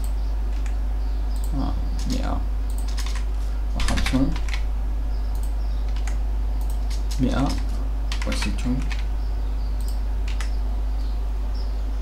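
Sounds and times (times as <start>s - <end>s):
keyboard typing: 0.0s - 0.8s, 1.4s - 4.6s, 5.4s - 9.1s, 9.8s - 10.6s
low hum: 0.0s - 12.0s.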